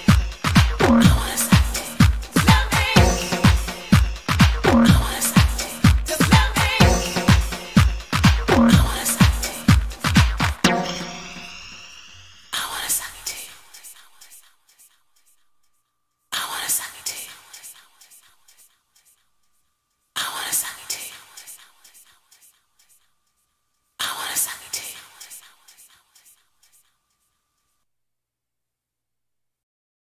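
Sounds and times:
breathy vocal sample with echo: 0.0s - 10.4s, 12.6s - 14.9s.

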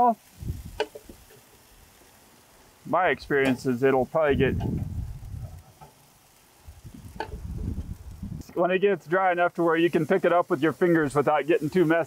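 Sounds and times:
faint grill sizzle: 0.0s - 12.0s
low rumble: 4.3s - 5.6s.

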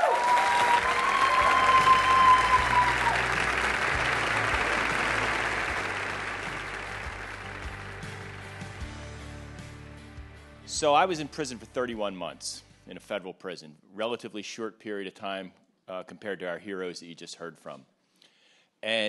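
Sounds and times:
crowd whooping: 0.0s - 7.2s
audience applauding: 0.0s - 9.4s.

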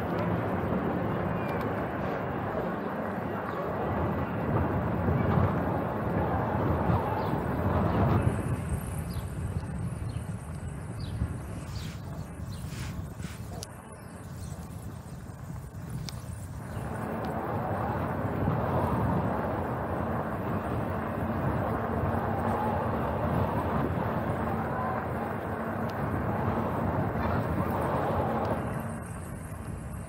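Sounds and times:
bicycle tyre rumble: 0.0s - 30.0s
wind noise on microphone: 0.0s - 30.0s.

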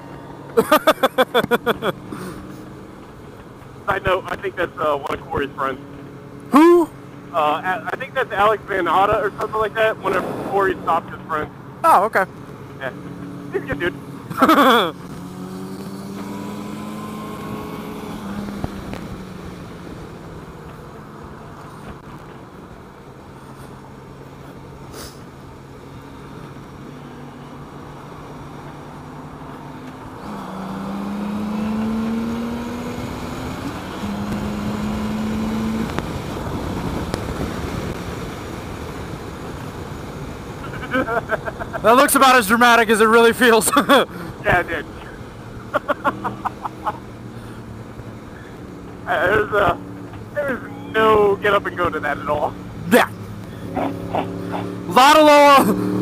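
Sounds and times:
wind noise: 10.1s - 11.2s, 35.6s - 38.2s.

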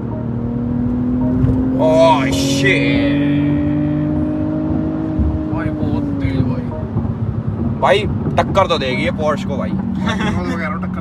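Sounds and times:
car engine at high revs: 0.0s - 11.0s.

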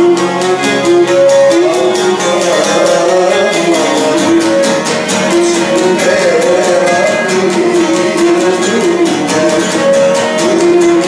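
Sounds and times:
bowed lyra melody: 0.0s - 11.0s
lute strummed in steady rhythm: 0.0s - 11.0s.

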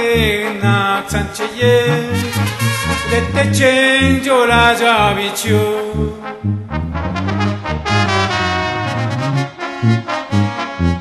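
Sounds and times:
brass band playing: 0.0s - 11.0s.

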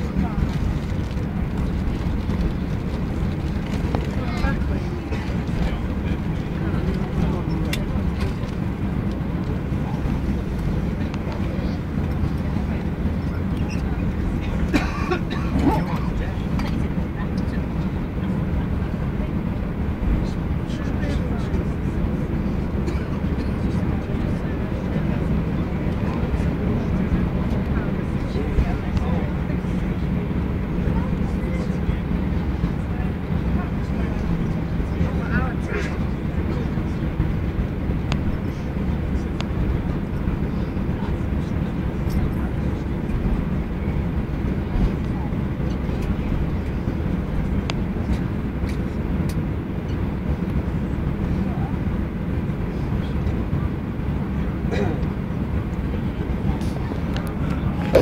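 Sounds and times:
aircraft rolling: 0.0s - 58.0s
low engine rumble in aircraft cabin: 0.0s - 58.0s.

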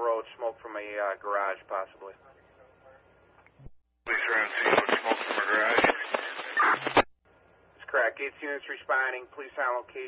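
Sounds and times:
distorted voice over scanner radio: 4.1s - 7.1s.

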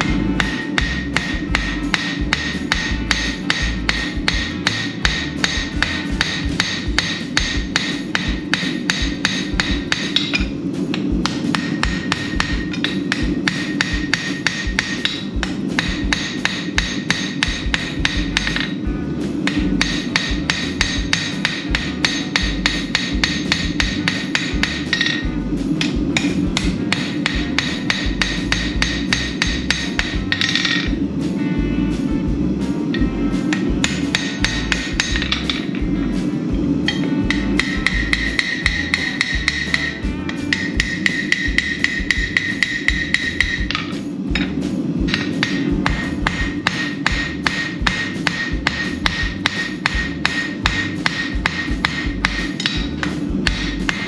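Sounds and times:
anvil ringing: 0.0s - 18.8s, 19.5s - 31.0s, 32.9s - 35.8s, 36.9s - 54.0s
hammer striking hot steel: 0.0s - 31.0s, 32.9s - 35.9s, 36.8s - 54.0s.

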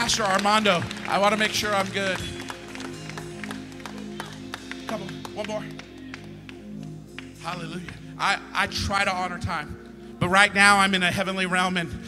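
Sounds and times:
man speaking: 0.0s - 2.4s, 7.4s - 12.0s
sustained low chords: 0.0s - 12.0s.

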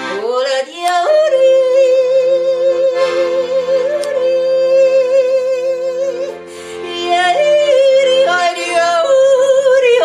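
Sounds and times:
accordion chords: 0.0s - 10.0s.

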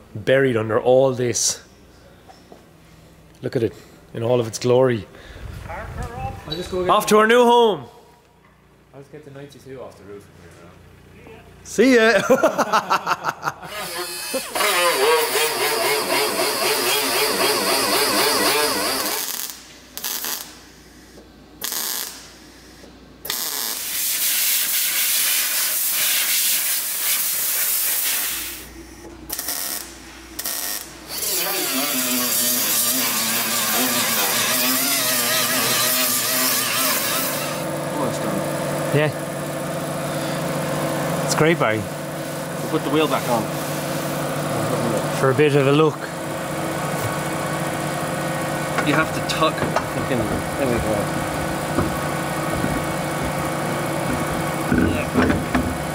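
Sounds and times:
steady hum: 0.0s - 55.9s
pneumatic die grinder whining: 13.6s - 20.4s, 29.3s - 38.7s.

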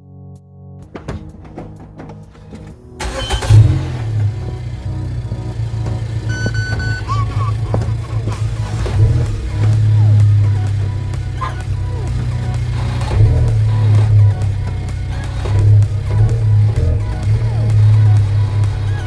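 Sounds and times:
car engine starting and idling: 0.9s - 19.0s
engine revving: 3.0s - 19.0s
short electronic beep: 6.3s - 7.5s.

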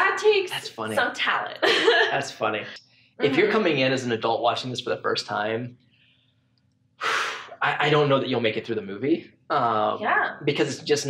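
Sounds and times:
person speaking: 0.0s - 5.7s, 7.0s - 11.0s
breathy sigh: 7.0s - 7.7s.

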